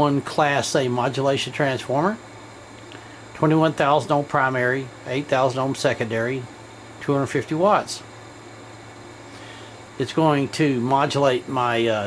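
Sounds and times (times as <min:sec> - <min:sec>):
faint hiss: 0:00.0 - 0:12.0
low mains hum: 0:00.0 - 0:12.0.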